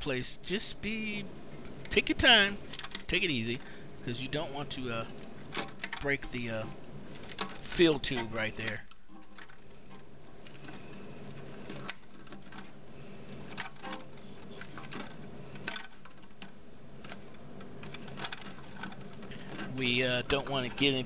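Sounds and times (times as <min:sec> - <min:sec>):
steady low hum: 0:00.0 - 0:21.0
plastic parts clicking and knocking: 0:01.6 - 0:03.8, 0:04.6 - 0:21.0.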